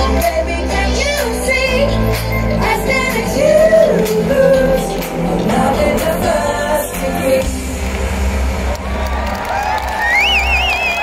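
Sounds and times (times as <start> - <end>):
live pop band playing: 0.0 - 8.8
crowd cheering and whooping: 8.2 - 11.0.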